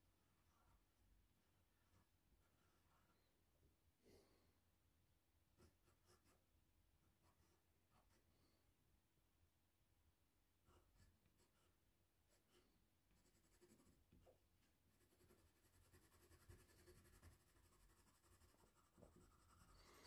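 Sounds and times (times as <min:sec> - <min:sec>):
pastel scratching on paper: 0:00.2 - 0:03.2, 0:05.6 - 0:06.5, 0:10.6 - 0:14.2, 0:14.9 - 0:20.0.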